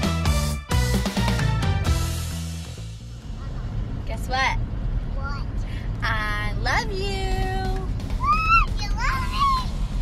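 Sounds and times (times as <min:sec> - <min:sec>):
steady low rumble: 0:01.9 - 0:10.0
high-pitched wordless voice: 0:05.1 - 0:06.4.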